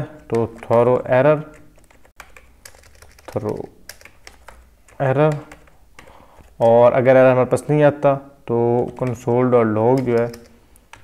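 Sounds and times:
computer keyboard key clicks: 9.9 - 11.0.

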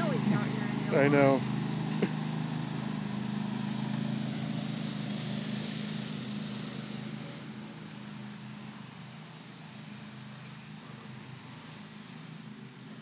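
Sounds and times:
riding lawn mower engine: 0.0 - 13.0.

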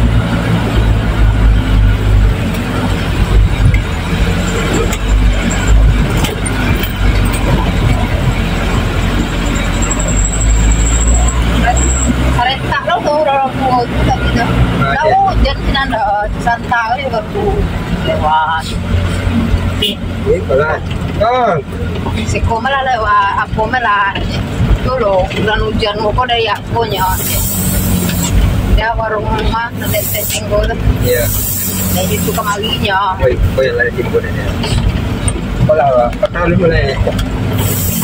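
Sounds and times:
truck engine rumble: 0.0 - 38.0
voices talking: 3.6 - 38.0.

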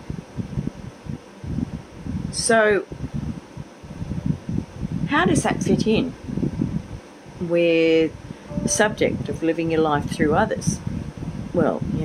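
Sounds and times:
low pulsing rumble: 8.1 - 12.0.

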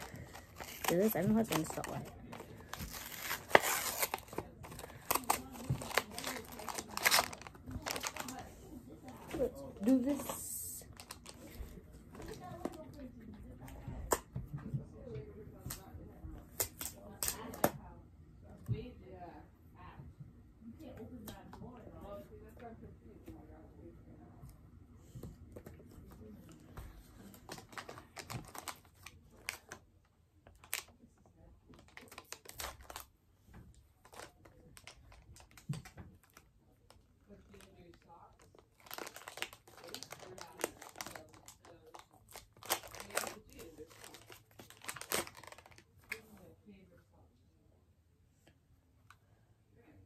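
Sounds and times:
packaging crinkling and rustling: 0.0 - 13.1, 27.2 - 31.0, 31.7 - 33.1, 33.7 - 46.4.

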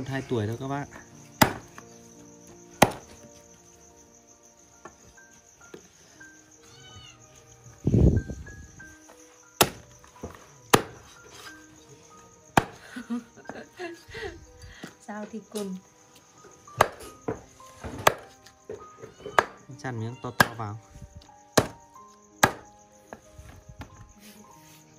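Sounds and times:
cleaver chopping on wooden block: 1.4 - 1.8, 2.8 - 3.1, 9.6 - 9.8, 10.7 - 11.1, 16.8 - 18.4, 19.3 - 19.6, 21.6 - 21.8, 22.4 - 22.7.

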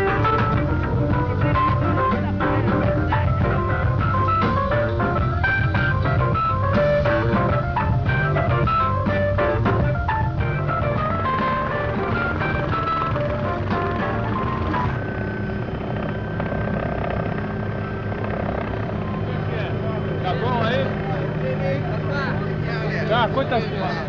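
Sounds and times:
people's voices: 0.0 - 9.8, 10.6 - 24.0
plucked string music: 0.0 - 15.2
helicopter engine and rotor drone: 0.0 - 24.0.

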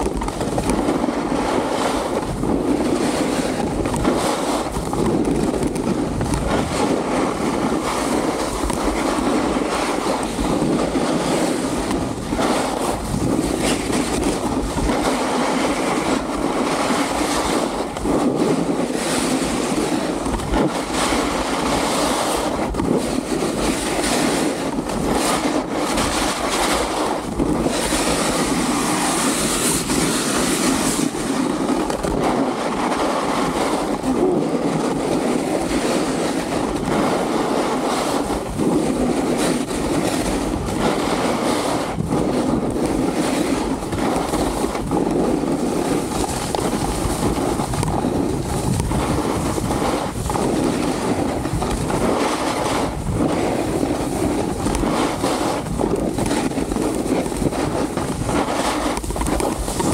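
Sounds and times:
snowboard knocking over bumps: 0.0 - 1.5, 2.4 - 21.3, 38.6 - 59.9
snowboard scraping on snow: 0.0 - 59.9.

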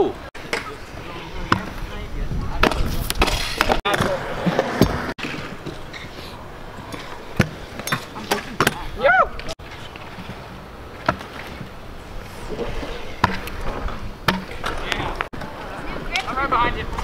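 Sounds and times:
scooter wheels rolling on concrete: 0.0 - 17.0
scooter deck clacking on ground: 12.6 - 17.0.

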